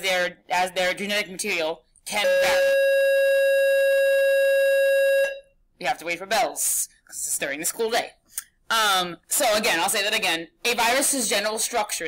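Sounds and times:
electronic school bell: 2.2 - 5.4.

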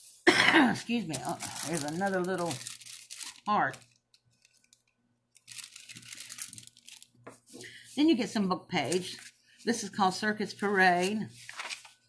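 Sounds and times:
paper rustling and crinkling: 0.9 - 7.6, 8.8 - 9.7, 10.5 - 12.0.

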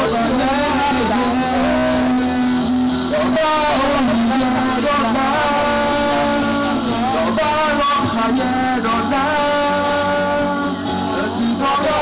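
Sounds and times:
live band through a pa: 0.0 - 12.0
person singing melody: 0.0 - 12.0.

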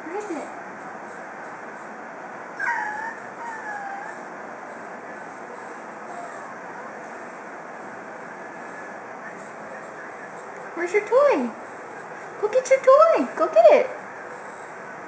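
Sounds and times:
puppy whimpering: 2.6 - 4.3, 5.6 - 7.2.

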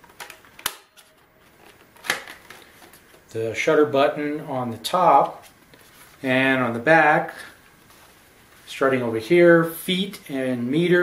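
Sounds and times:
plastic camera handling noise: 0.0 - 3.3.

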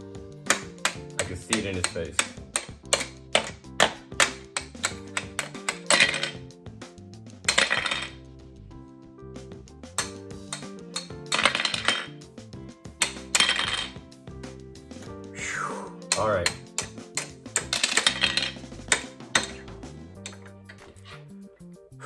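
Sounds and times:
background music: 0.0 - 22.0
plastic hammers tapping plastic: 0.4 - 6.4, 16.0 - 20.8.

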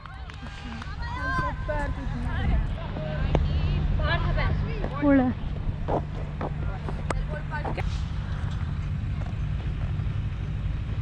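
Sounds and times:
low microphone rumble: 0.0 - 11.0.

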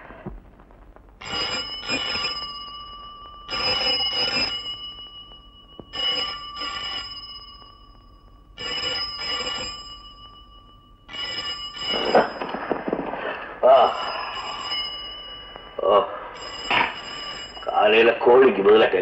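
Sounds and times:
telephone bell ringing: 1.2 - 18.6.

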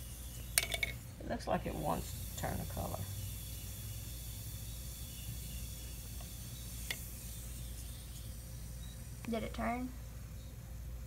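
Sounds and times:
acid fizzing: 0.0 - 10.1.

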